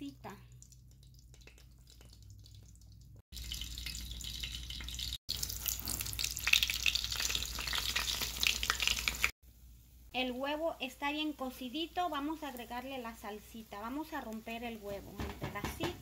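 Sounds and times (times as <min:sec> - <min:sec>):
eggs sizzling in hot oil: 0:00.0 - 0:15.0.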